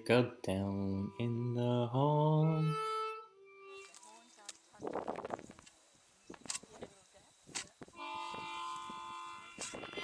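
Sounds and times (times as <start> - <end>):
harmonica chord: 0.5 - 4.3, 8.0 - 10.0.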